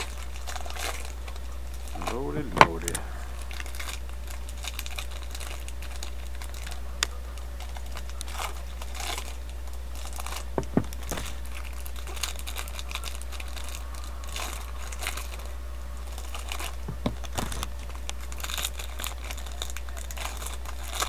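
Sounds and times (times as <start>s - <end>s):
cards handled: 0.0s - 13.8s
foil wrapper crinkling and tearing: 0.0s - 21.0s
steady low hum: 0.0s - 21.0s.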